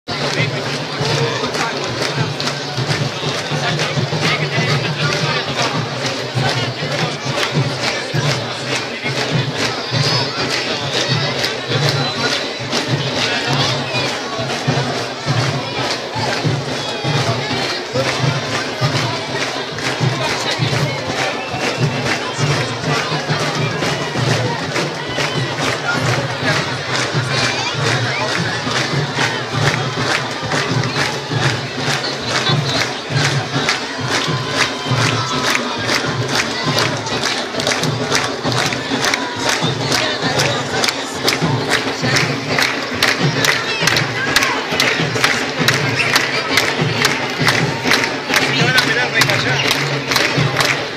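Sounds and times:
drums beating steady rhythm: 0:00.0 - 0:50.9
loud crowd noise: 0:00.0 - 0:50.9.

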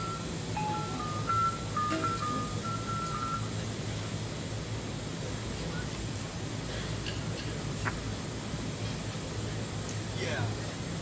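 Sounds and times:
gamelan playing softly: 0:00.0 - 0:03.5.

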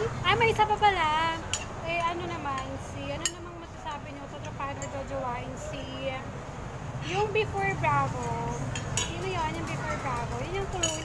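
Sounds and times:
cutlery clinking against plates: 0:08.6 - 0:11.0.

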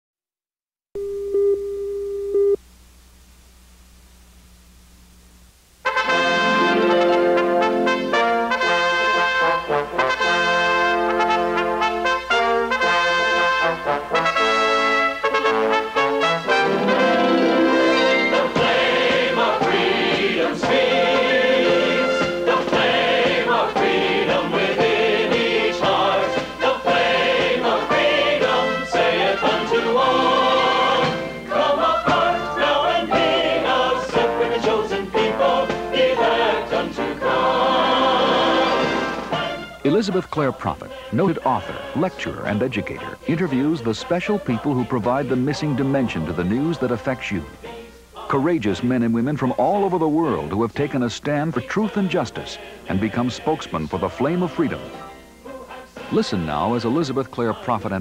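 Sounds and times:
electronic test tone: 0:01.0 - 0:02.6
mains hum: 0:01.0 - 0:58.0
tape hiss: 0:01.0 - 0:58.0
choir singing: 0:06.0 - 0:15.1, 0:15.7 - 0:58.0.

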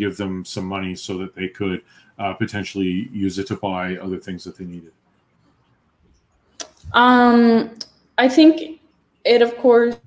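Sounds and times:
woman saying um: 0:06.9 - 0:08.7.

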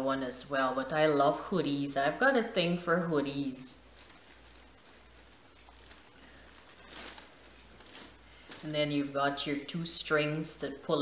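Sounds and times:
low steady hum: 0:00.0 - 0:11.0
fabric rustling: 0:03.2 - 0:09.6.

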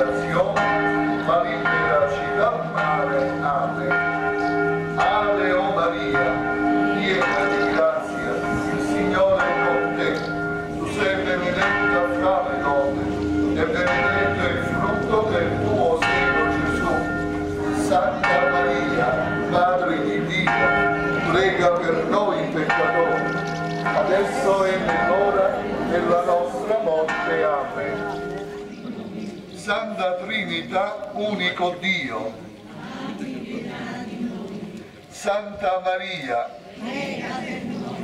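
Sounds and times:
church bells ringing: 0:00.0 - 0:38.0.

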